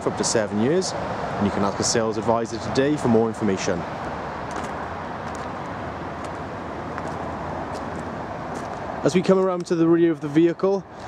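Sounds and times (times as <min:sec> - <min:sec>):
road traffic: 0:00.0 - 0:11.0
footsteps on gravel: 0:04.5 - 0:08.9.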